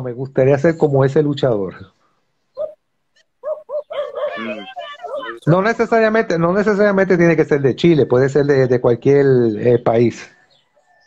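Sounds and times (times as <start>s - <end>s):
dog yipping over a phone: 2.6s - 2.8s, 3.4s - 5.4s.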